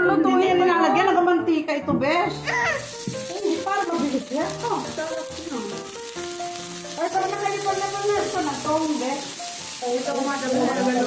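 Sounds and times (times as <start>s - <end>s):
background music: 0.0s - 11.0s
meat sizzling on a grill: 2.5s - 11.0s.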